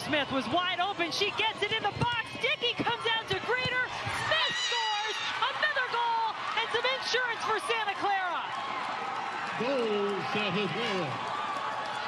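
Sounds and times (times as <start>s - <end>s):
high-pitched voices shouting and cheering: 1.0s - 8.4s.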